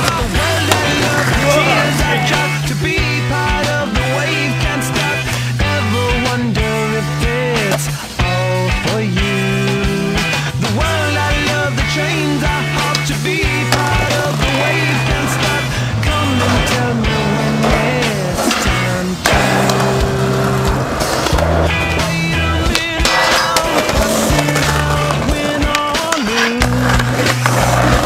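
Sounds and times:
rock music with bass and drums: 0:00.0 - 0:28.0
skateboard clacking: 0:00.0 - 0:28.0
skateboard wheels rolling on concrete: 0:00.0 - 0:28.0.

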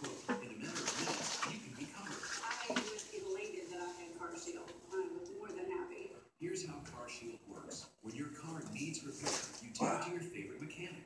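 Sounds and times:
indistinct television voices: 0:00.0 - 0:11.0.

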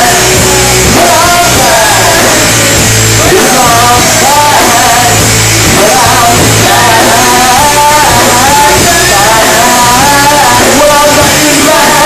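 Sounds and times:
bass: 0:00.0 - 0:12.0
drum kit: 0:00.0 - 0:12.0
electric guitars: 0:00.0 - 0:12.0
man singing: 0:00.0 - 0:12.0.

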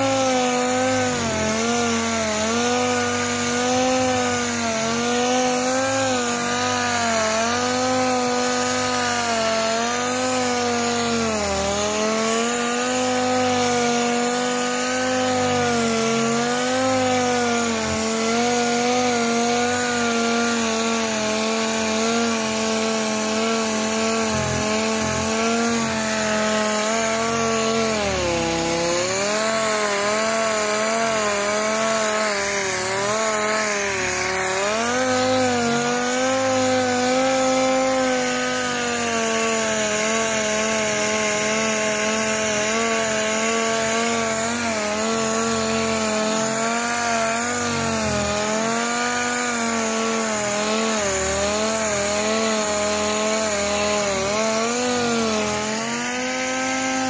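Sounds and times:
orbital sander motor whine: 0:00.0 - 0:57.0
sanding pad rubbing hiss: 0:00.0 - 0:57.0.

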